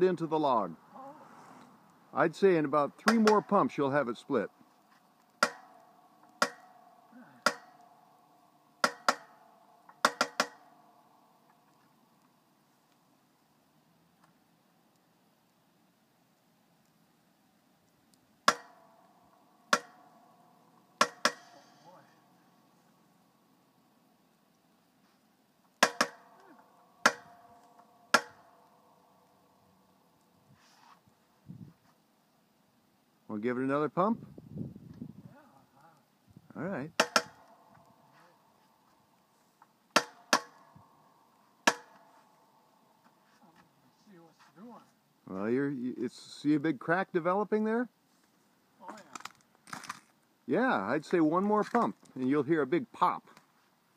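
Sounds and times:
log splitter metallic clicks: 3.0s - 3.7s, 5.2s - 8.0s, 8.8s - 10.8s, 18.4s - 18.9s, 19.7s - 20.2s, 20.8s - 21.7s, 25.7s - 28.8s, 37.0s - 37.9s, 39.9s - 40.8s, 41.6s - 42.1s.

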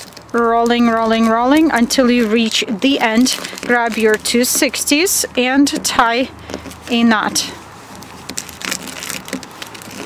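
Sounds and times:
balloons crinkling and rubbing: 0.0s - 10.0s.

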